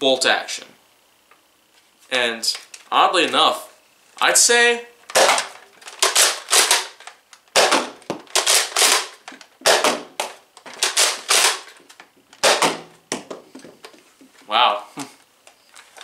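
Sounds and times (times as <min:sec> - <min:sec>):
plastic blaster bolt clacks: 0:05.1 - 0:12.8.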